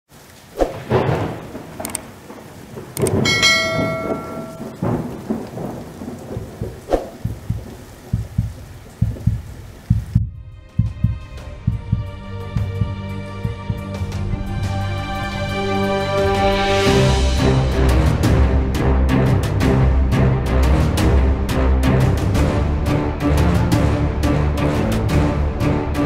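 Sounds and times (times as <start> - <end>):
rain hiss: 0.1 - 10.2
thunder rumbles and cracks: 0.6 - 12.0
click: 1.8 - 2.0, 3.0 - 3.2
ringing bell-like chime: 3.2 - 4.9
music: 10.1 - 26.0.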